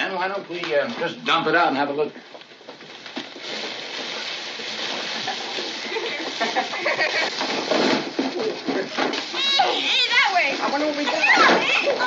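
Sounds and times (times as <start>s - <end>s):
paper and cloth rustling: 2.3s - 12.0s
children squealing excitedly: 9.3s - 10.4s, 11.1s - 12.0s.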